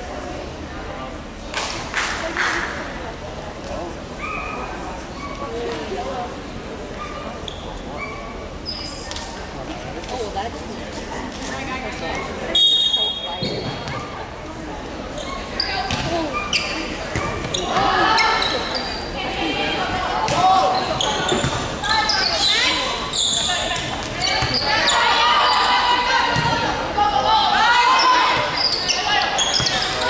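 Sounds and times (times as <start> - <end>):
referee's whistle: 12.5 - 13.4
volleyball hits: 20.2 - 20.7
players and spectators shouting: 24.2 - 30.0.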